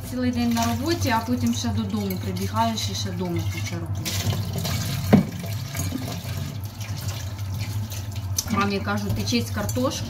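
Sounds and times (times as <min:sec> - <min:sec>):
glass jars being washed: 0:00.0 - 0:10.0
water running from a tap: 0:00.0 - 0:10.0.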